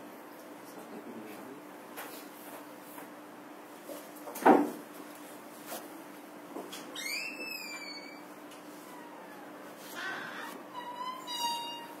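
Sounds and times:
chalk squeaking on chalkboard: 8.8 - 12.0.

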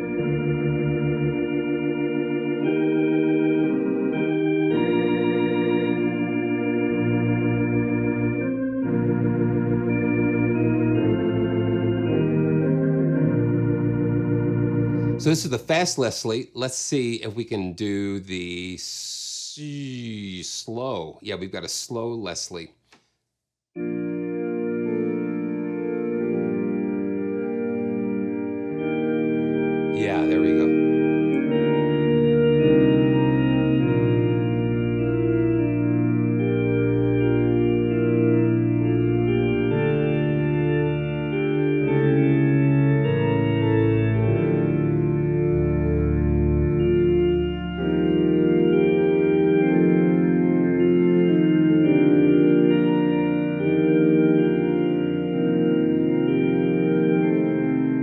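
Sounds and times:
organ playing sustained chords: 0.0 - 22.6, 23.8 - 58.0.

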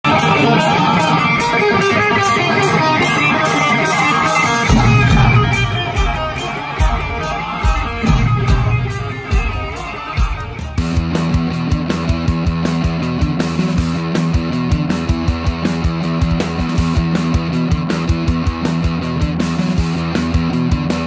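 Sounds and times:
electric guitars: 0.0 - 21.0
live rock band: 0.0 - 21.0
heavy bass and kick drum: 4.7 - 21.0.

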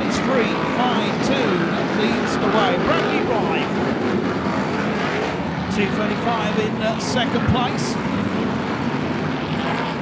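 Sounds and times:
racing car engines: 0.0 - 10.0.

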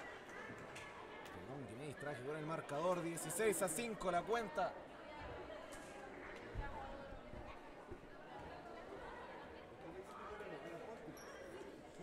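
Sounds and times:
chatter of many voices echoing: 0.0 - 12.0.

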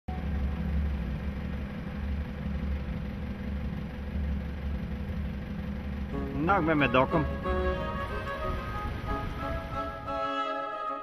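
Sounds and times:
boat engine droning: 0.1 - 11.0.

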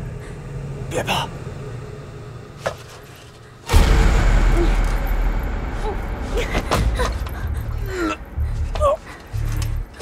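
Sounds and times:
loud rushing rumble: 3.7 - 8.7.

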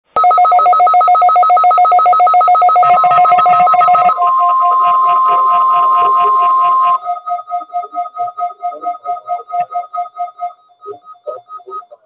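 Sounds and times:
rapid two-pitch electronic beeping: 0.2 - 12.0
steady high alarm tone: 0.2 - 12.0.

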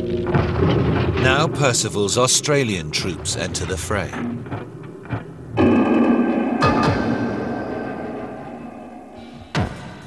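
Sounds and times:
documentary background music: 0.0 - 10.0.

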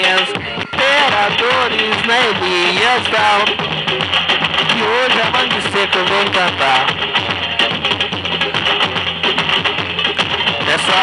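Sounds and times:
plucked strings: 0.0 - 11.0
samba percussion steady beat: 0.0 - 11.0.

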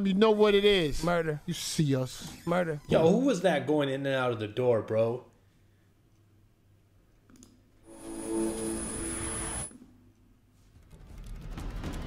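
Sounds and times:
chord-like logo tone with hiss: 7.9 - 9.7.

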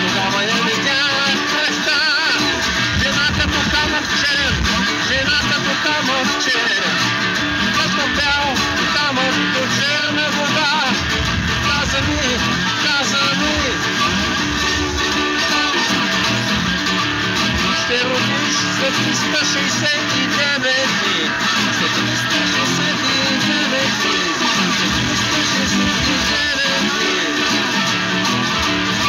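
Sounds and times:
acoustic guitar playing: 0.0 - 29.0
man singing: 0.0 - 29.0.

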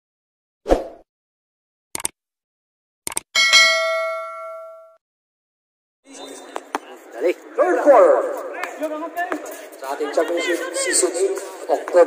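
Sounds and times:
notification bell ding: 3.4 - 5.0.

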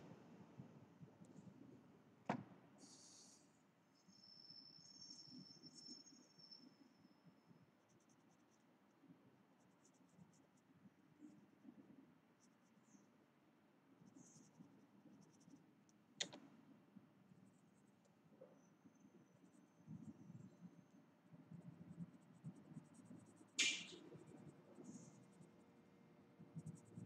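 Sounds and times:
pencil scratching on paper: 21.6 - 25.6
sharp click: 23.6 - 24.0.

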